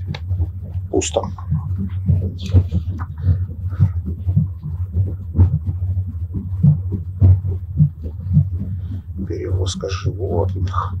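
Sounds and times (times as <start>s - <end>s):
train carriage rumble: 0.9s - 3.2s.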